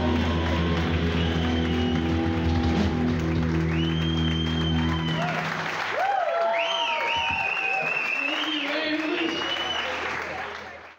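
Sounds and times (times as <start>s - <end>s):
rock band sustained chord: 0.0s - 5.7s
audience whistling: 0.0s - 10.2s
audience applauding: 0.0s - 10.9s.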